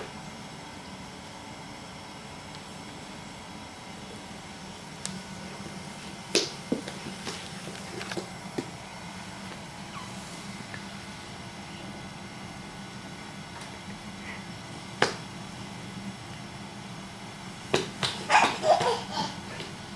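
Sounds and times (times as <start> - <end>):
low background hum: 0.0 - 19.9
hands slapping hardwood floor: 15.0 - 15.2, 17.7 - 19.0.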